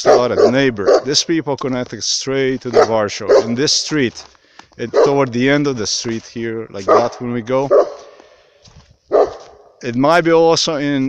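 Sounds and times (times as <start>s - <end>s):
dog barking: 0.0s - 1.2s, 2.7s - 3.6s, 4.9s - 5.3s, 6.9s - 8.2s, 9.1s - 9.8s.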